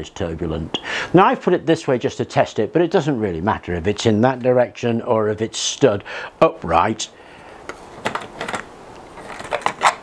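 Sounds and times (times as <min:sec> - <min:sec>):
plastic clicks and knocks: 0:07.7 - 0:10.0.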